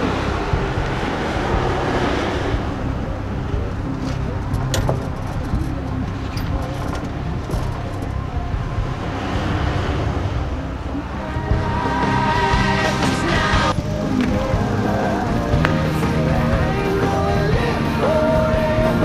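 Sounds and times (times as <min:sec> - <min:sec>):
car driving past: 0:00.0 - 0:04.5
tyres on asphalt: 0:00.0 - 0:19.0.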